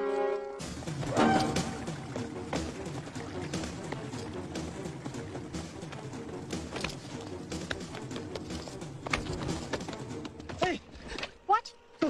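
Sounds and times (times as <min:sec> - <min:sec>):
action film score: 0:00.0 - 0:12.0
footfalls running on rocks: 0:00.7 - 0:10.8.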